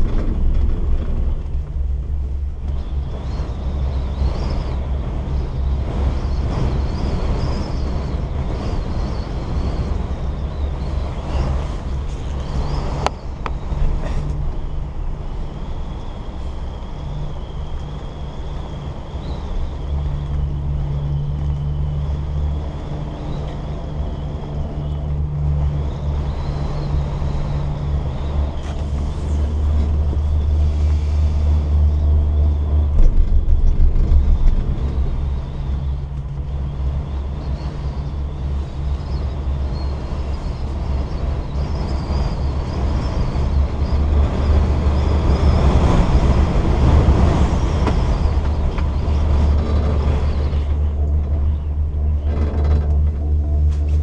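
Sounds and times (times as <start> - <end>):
chairlift low rumble and hiss: 0.0 - 54.0.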